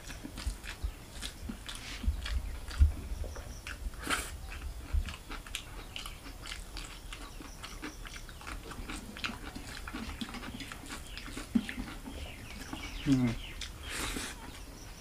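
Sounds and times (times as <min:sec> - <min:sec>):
fingers mixing food wet clicks: 0:00.0 - 0:02.9, 0:04.5 - 0:14.7
chewing and lip smacking: 0:00.0 - 0:14.9.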